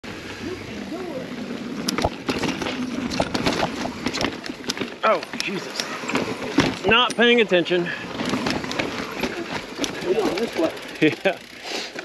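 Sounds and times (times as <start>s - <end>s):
bike clicks and knocks on rock: 1.8s - 7.4s, 8.1s - 11.6s.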